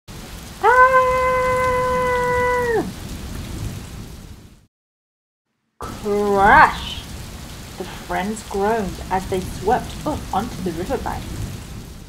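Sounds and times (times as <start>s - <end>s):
steady rain: 0.1s - 4.7s, 5.8s - 12.0s
high-pitched ahhh cry: 0.6s - 2.9s.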